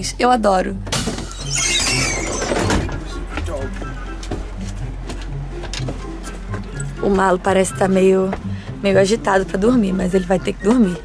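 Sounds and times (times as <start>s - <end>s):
background music: 0.0s - 11.0s
bus door opening: 0.8s - 8.5s.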